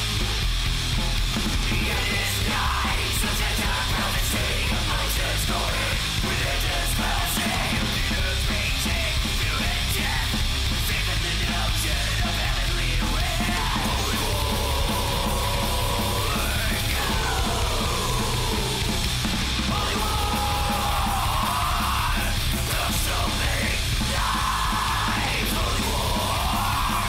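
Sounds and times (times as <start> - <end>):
distorted punk band music: 0.0 - 27.0
harsh yelled vocals: 1.4 - 27.0.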